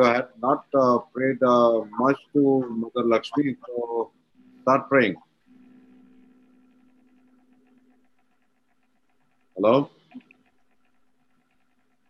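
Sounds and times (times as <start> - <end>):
faint line noise hum: 0.0 - 11.7.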